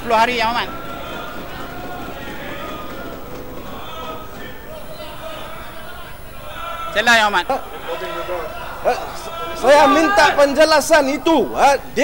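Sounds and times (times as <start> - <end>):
murmur of voices: 0.0 - 12.0
raised voices: 0.0 - 12.0.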